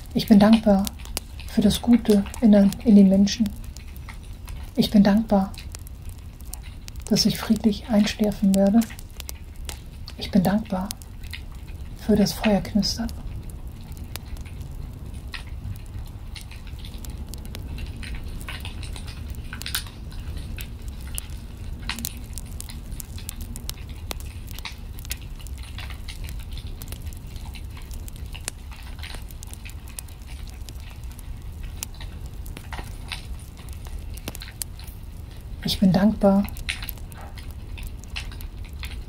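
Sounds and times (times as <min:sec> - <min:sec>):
low steady rumble: 0:00.0 - 0:39.0
wood fire crackling: 0:00.0 - 0:39.0.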